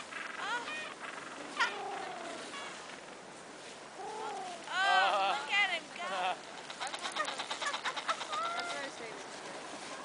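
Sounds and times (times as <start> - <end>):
penguins calling: 6.0 - 9.1.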